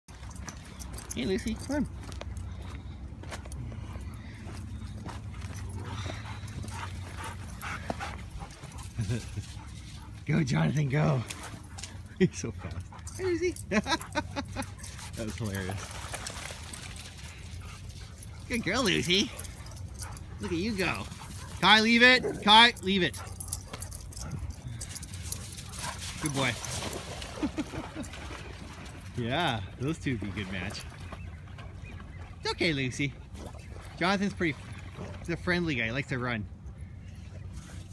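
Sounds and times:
dogs playing vocalizing: 3.5s - 28.9s.

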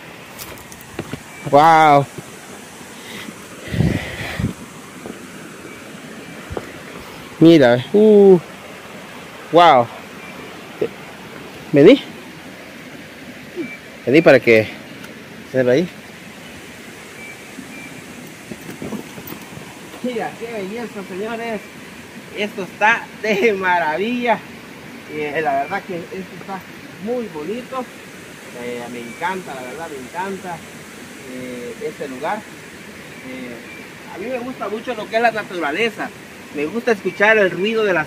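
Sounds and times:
wind buffeting microphone: 0.0s - 8.2s, 16.5s - 20.4s
outdoor background hiss: 0.0s - 38.0s
river water rushing: 0.0s - 38.0s
faint high chirps: 13.5s - 14.5s, 17.1s - 18.4s, 28.6s - 30.2s.

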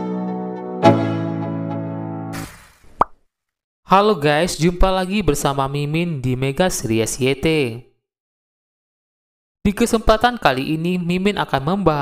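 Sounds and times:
held keyboard chord: 0.0s - 2.3s
short pop sound effect: 2.3s - 3.2s.

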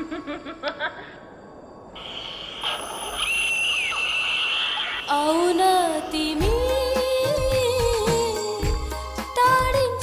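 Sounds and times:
high-pitched insect drone: 1.3s - 6.4s.

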